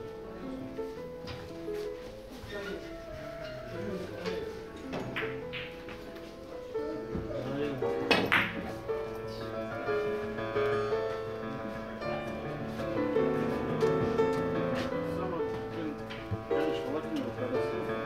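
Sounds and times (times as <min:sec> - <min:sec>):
background music with melody: 0:00.0 - 0:18.0
billiard balls colliding: 0:03.5 - 0:06.3, 0:08.0 - 0:09.2
cue striking billiard ball: 0:04.8 - 0:06.1, 0:08.0 - 0:08.8.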